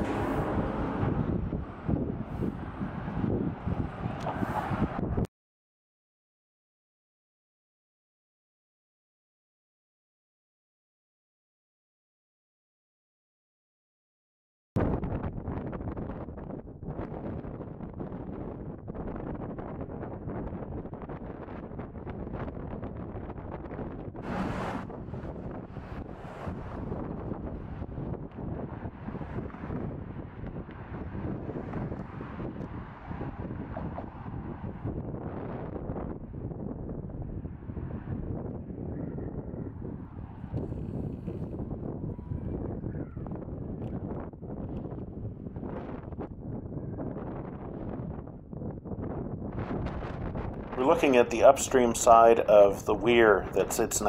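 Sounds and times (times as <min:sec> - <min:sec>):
wind blowing across microphone: 0:00.0 - 0:05.3, 0:14.8 - 0:54.0.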